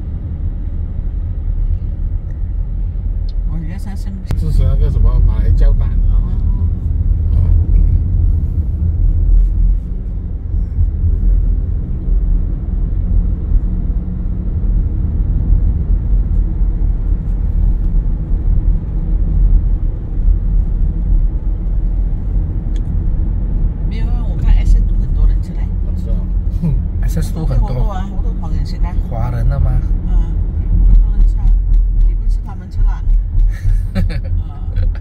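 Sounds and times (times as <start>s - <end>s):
car engine and tyre noise: 0.0s - 35.0s.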